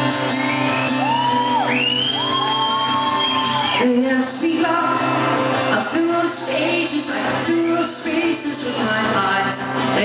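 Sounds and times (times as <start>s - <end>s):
acoustic and electric guitars: 0.0s - 10.0s
audience whooping and shouting: 0.1s - 4.0s
woman singing: 3.4s - 10.0s.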